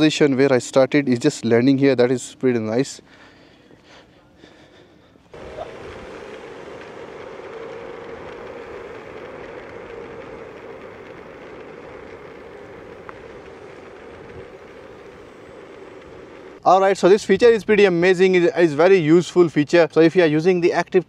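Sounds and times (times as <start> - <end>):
drone propellers humming: 4.6 - 17.8.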